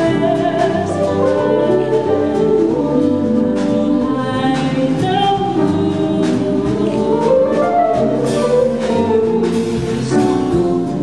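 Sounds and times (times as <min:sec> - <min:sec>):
jazz combo playing: 0:00.0 - 0:11.0
vocal group singing close harmony: 0:00.0 - 0:11.0.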